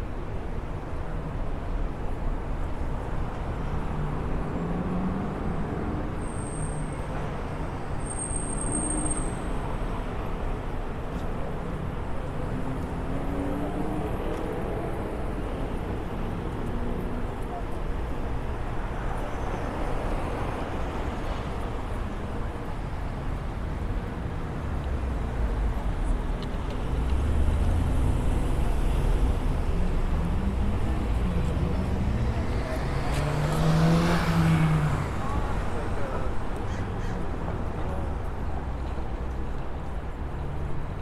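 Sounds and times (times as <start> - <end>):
cars driving past: 26.8 - 41.0.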